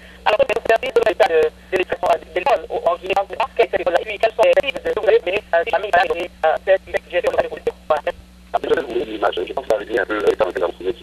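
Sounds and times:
person talking over telephone: 0.3 - 11.0.

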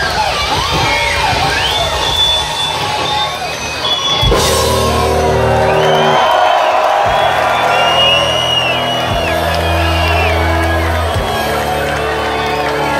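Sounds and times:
crowd whooping: 0.0 - 12.9
live rock band playing: 3.4 - 12.9
drum hits: 4.2 - 11.7.

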